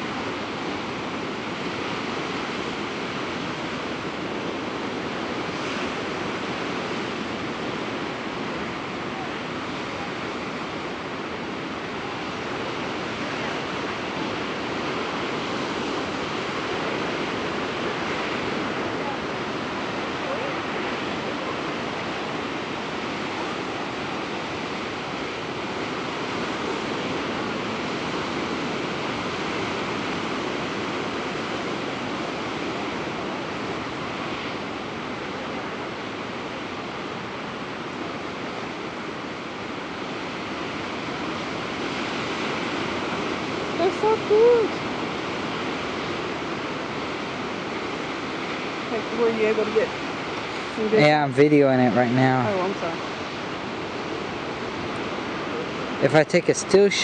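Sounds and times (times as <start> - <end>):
surf breaking on rocky shore: 0.0 - 57.0.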